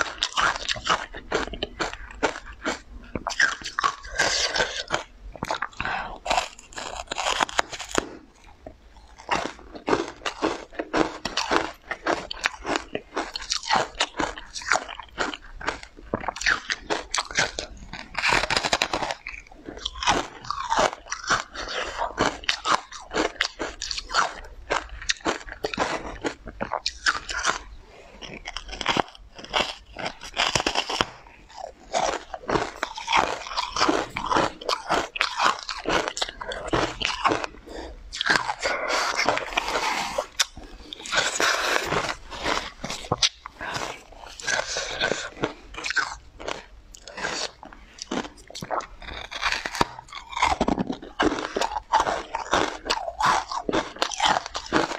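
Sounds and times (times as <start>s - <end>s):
person chewing: 0.0s - 54.9s.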